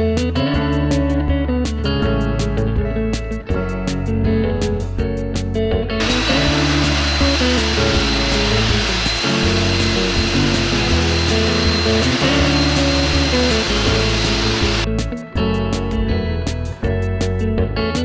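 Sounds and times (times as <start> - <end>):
background guitar music: 0.0 - 18.0
steam cleaner hissing: 6.0 - 14.9.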